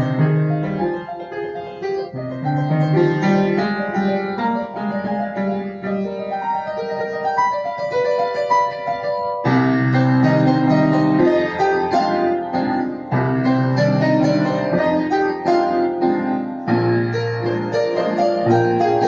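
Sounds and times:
upright piano playing: 0.0s - 19.0s.

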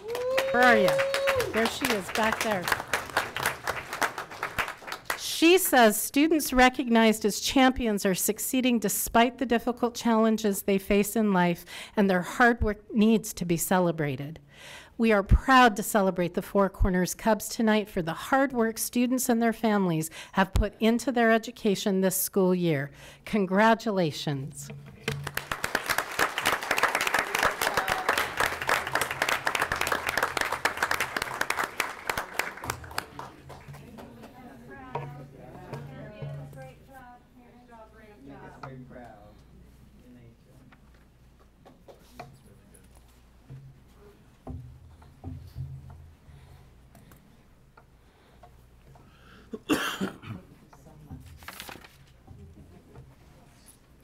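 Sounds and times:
audience applauding: 0.0s - 5.2s, 25.1s - 34.2s
person coughing: 49.5s - 50.5s.

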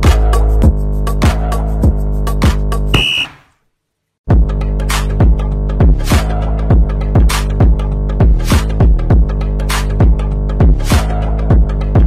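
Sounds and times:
electronic workout music: 0.0s - 3.4s, 4.3s - 12.0s
short high electronic beep: 3.0s - 3.4s.

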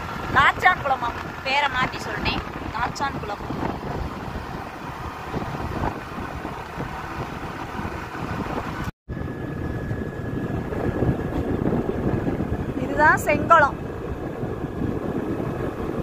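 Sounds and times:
vehicle road and wind rumble: 0.0s - 16.0s.

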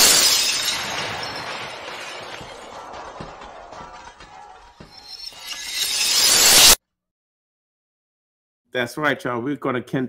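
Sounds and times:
debris scattering and ringing: 0.0s - 6.8s
glass shattering: 0.0s - 6.8s.

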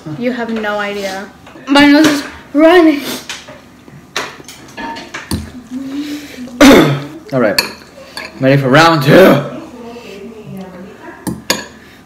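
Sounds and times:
person humming: 5.5s - 7.3s.

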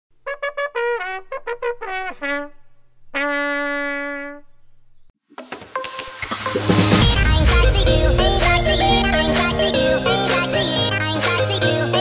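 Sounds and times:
electronic music: 5.8s - 11.6s.

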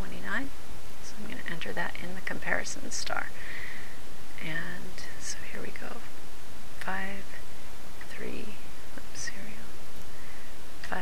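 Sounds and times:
steady hiss: 0.0s - 11.0s
woman whispering: 4.4s - 6.0s, 8.0s - 9.7s.

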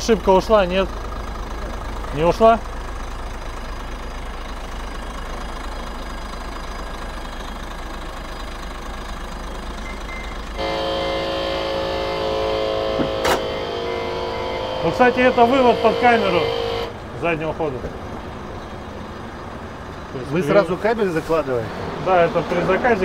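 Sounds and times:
diesel engine idling: 0.0s - 23.0s.

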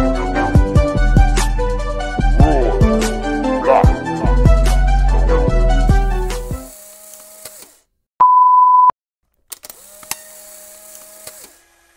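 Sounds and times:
electronic beep: 8.2s - 8.9s.

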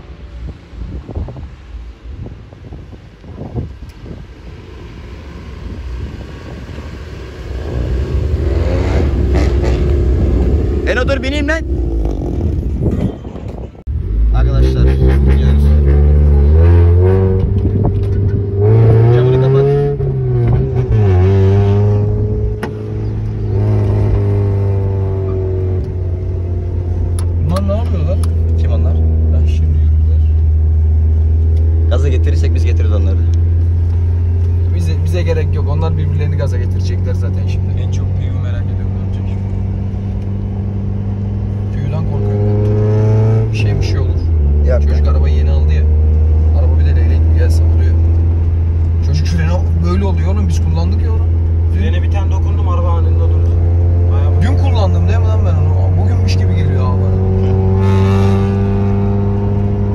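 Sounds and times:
car engine revving from inside: 14.6s - 27.3s, 39.0s - 50.0s, 53.2s - 59.9s.

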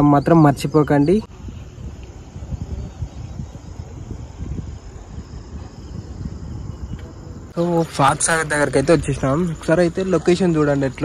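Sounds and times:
insects trilling: 0.0s - 11.0s
wind rumbling on microphone: 0.0s - 11.0s.

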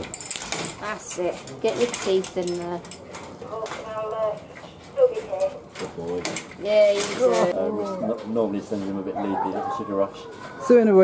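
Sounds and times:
people's voices: 0.8s - 11.0s.

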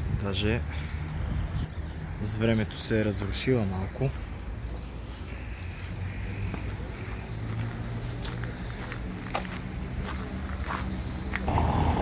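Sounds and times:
cars passing: 0.0s - 12.0s
road traffic noise: 0.0s - 12.0s.

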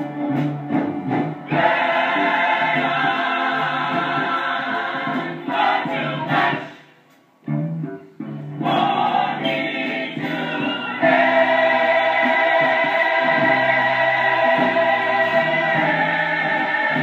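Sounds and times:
gospel choir singing: 1.1s - 6.9s, 8.6s - 17.0s.

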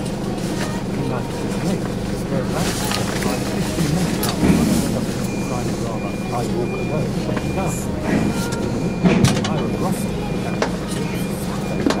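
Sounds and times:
van engine idling: 0.0s - 12.0s.

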